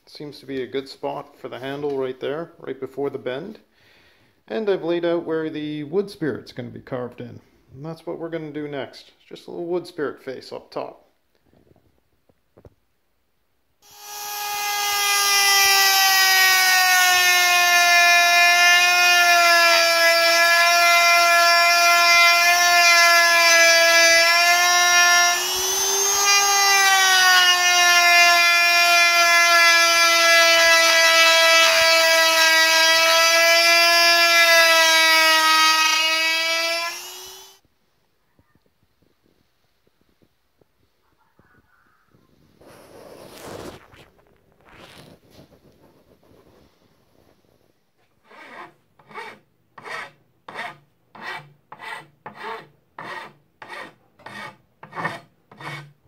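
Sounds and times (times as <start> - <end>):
rotary tool whine cutting wood: 13.8 - 37.6.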